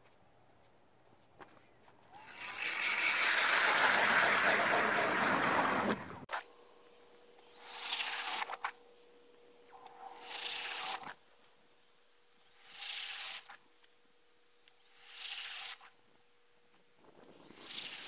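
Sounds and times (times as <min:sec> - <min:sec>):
ice auger drilling: 0:02.2 - 0:06.2
steady hum: 0:04.8 - 0:12.8.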